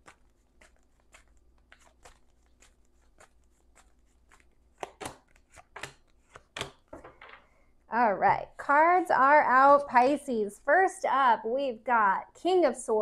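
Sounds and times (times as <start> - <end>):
cards clicking on a table: 0.1 - 7.4.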